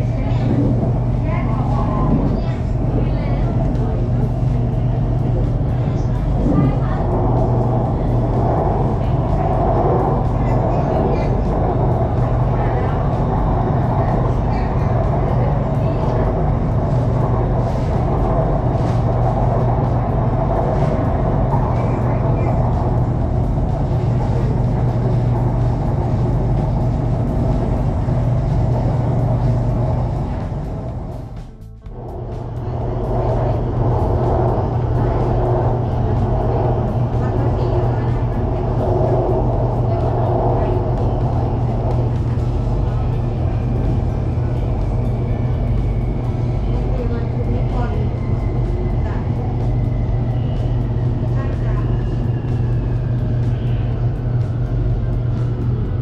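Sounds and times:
electric train rumbling: 0.0 - 56.0.

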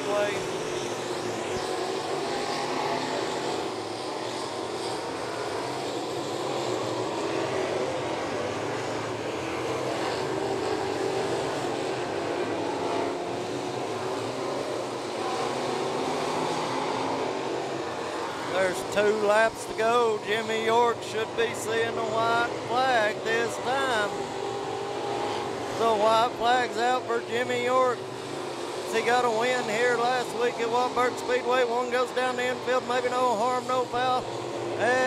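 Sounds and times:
race car engines droning: 0.0 - 35.0.

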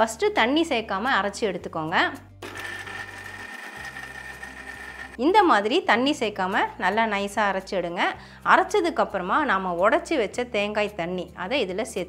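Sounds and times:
mixer grinder grinding coconut: 2.4 - 5.2.

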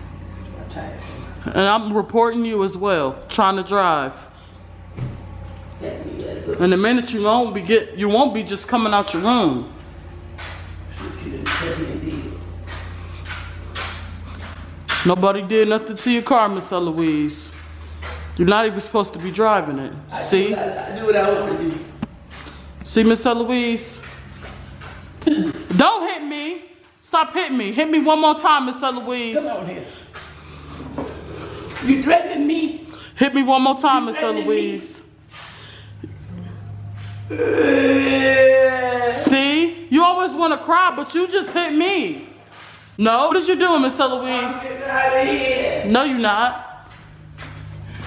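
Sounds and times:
low steady hum: 0.0 - 48.0
sandals scuffing on concrete: 12.2 - 15.1, 21.5 - 22.8, 35.1 - 35.8, 42.2 - 43.0, 46.8 - 48.0
low hum: 34.6 - 39.9
woman's drawn-out wail: 37.3 - 39.2.

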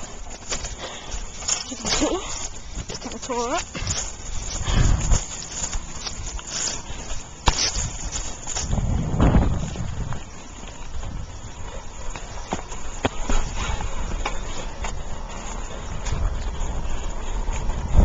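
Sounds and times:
bicycle rattling clicks: 0.0 - 8.9
wind rumbling on microphone: 0.0 - 18.0.

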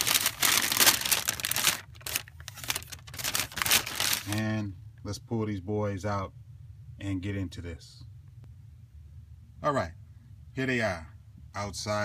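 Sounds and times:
tissue paper rustling and crinkling: 0.0 - 4.4.

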